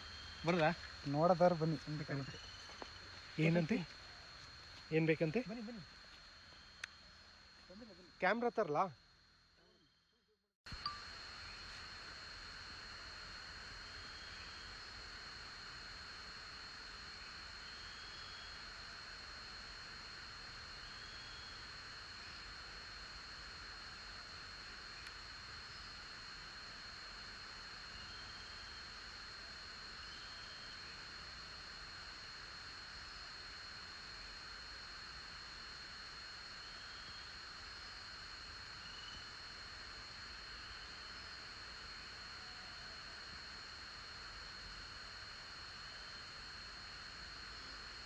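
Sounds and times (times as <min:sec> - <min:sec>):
high-pitched insect drone: 0:00.0 - 0:48.0.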